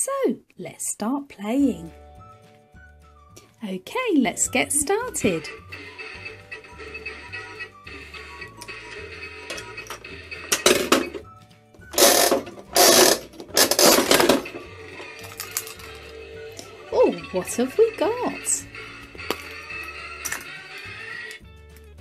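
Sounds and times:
background music: 0:00.6 - 0:22.0
vending machine gears ratcheting: 0:11.9 - 0:16.1.

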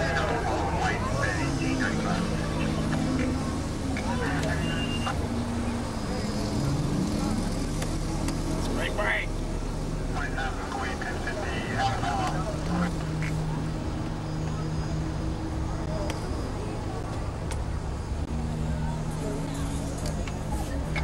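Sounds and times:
indistinct shouting and voices: 0:00.0 - 0:17.5
car engine and road noise: 0:00.0 - 0:21.0.

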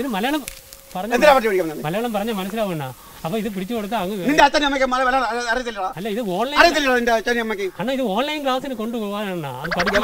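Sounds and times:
man talking: 0:01.0 - 0:10.0.

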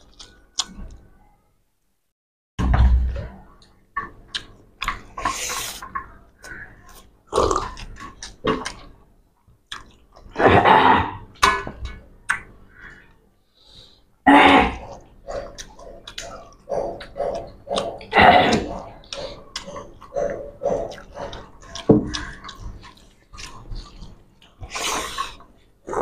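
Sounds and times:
chewing mouth noises: 0:09.7 - 0:10.4, 0:14.8 - 0:26.0.

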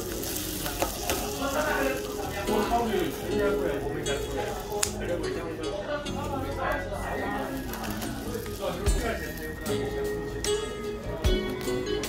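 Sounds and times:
sharp crust snaps: 0:00.0 - 0:02.5, 0:04.4 - 0:05.1, 0:07.4 - 0:09.7
scissors cutting crispy pork: 0:00.0 - 0:03.2, 0:04.4 - 0:05.0, 0:07.5 - 0:09.5.

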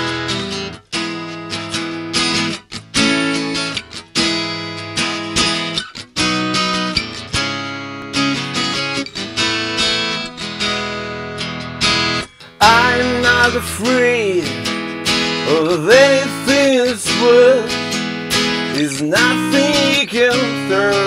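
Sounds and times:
acoustic guitar strumming chords: 0:00.0 - 0:21.0.

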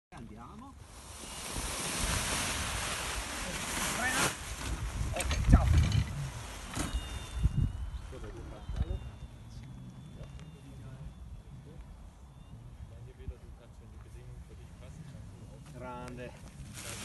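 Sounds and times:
wind rushing: 0:00.8 - 0:08.2
fabric flapping of paraglider wing: 0:00.9 - 0:07.5.

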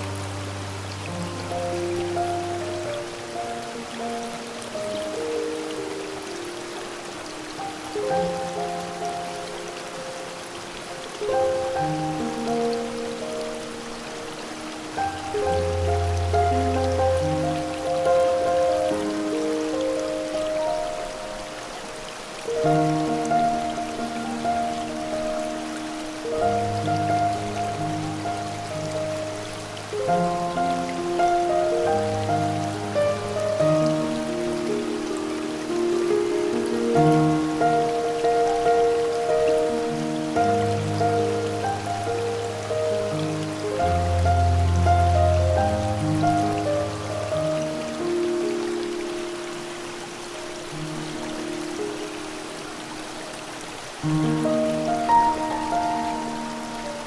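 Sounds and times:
slow soft piano music: 0:00.0 - 0:57.0
waterfall rushing: 0:00.0 - 0:57.0.

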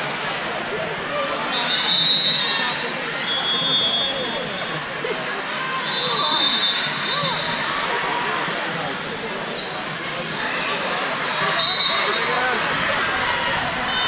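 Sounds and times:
chatter of many voices: 0:00.0 - 0:14.0.

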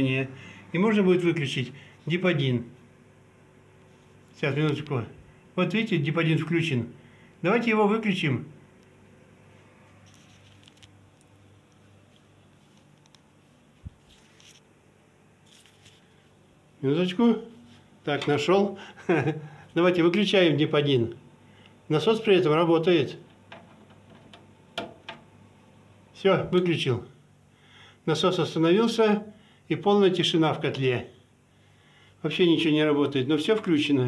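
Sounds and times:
light rustles: 0:09.8 - 0:14.7
boiler pump humming: 0:16.0 - 0:34.0.

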